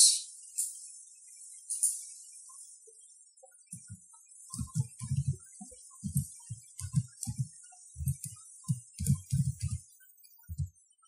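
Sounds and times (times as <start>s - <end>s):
computer keyboard keystrokes: 4.5s - 5.4s, 6.0s - 9.8s, 10.5s - 10.7s.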